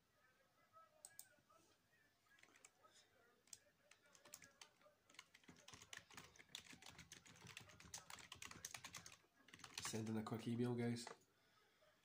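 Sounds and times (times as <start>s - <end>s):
faint keyboard typing: 1.0s - 1.4s, 2.3s - 11.3s.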